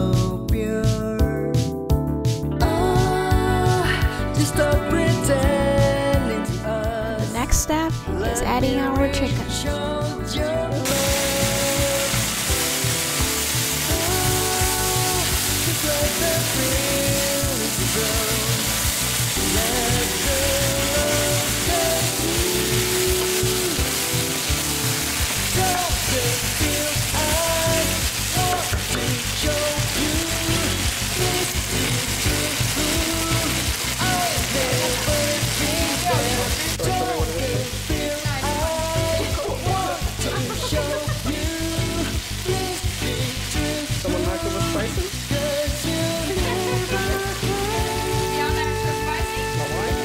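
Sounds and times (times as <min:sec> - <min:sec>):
background music: 0:00.0 - 0:50.0
food sizzling in hot oil: 0:10.8 - 0:50.0.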